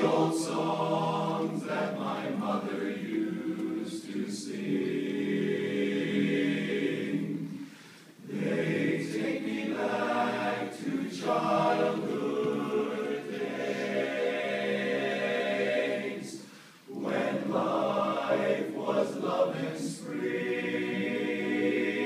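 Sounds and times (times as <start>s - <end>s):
men's chorus singing a cappella: 0.0s - 22.0s.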